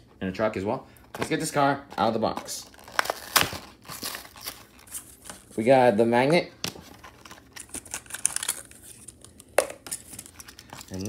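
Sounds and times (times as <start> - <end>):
plastic wrapping crinkling: 2.1 - 5.7, 6.7 - 11.0.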